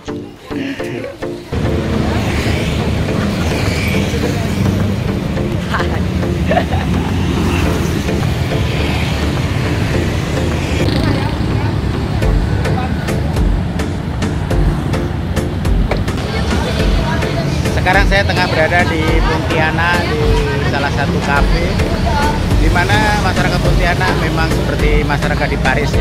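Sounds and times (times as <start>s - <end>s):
motorbikes and cars passing: 0.0s - 26.0s.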